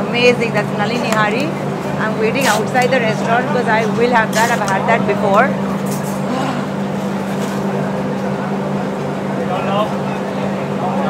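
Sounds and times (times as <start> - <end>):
faint voices: 0.0 - 7.0
continuous din of noise: 0.0 - 11.0
low machine hum: 0.0 - 11.0.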